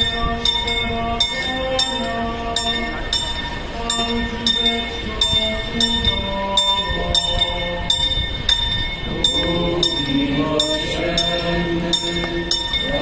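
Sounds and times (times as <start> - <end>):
church bell ringing: 0.0 - 13.0
slow hymn melody: 0.0 - 13.0.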